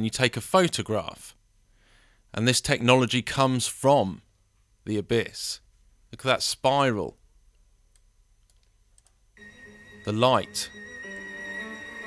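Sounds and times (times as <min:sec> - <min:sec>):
faint computer mouse clicks: 0:07.5 - 0:09.2
man's voice: 0:10.0 - 0:10.8.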